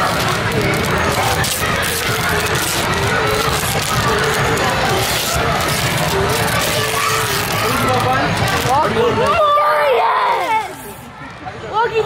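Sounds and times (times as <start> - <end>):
wrapping paper tearing: 0.0 - 11.0
chatter of many voices: 0.0 - 12.0.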